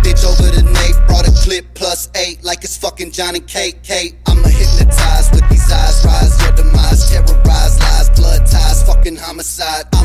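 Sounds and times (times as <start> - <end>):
heavy bass beat: 0.0 - 10.0
person rapping: 0.0 - 10.0.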